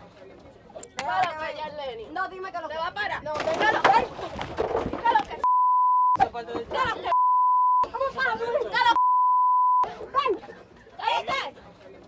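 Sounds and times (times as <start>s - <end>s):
censor bleep tone: 5.4s - 6.2s, 7.1s - 7.9s, 9.0s - 9.9s.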